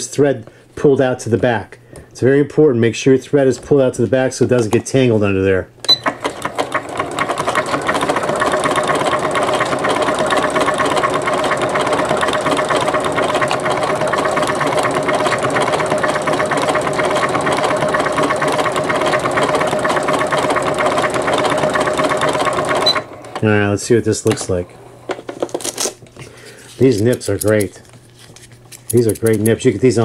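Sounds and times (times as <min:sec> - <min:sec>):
sewing machine stitching: 0:05.9 - 0:23.6.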